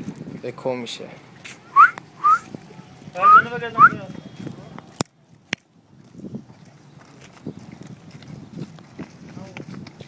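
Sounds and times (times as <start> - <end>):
person whistling: 1.7 - 2.4, 3.2 - 4.0.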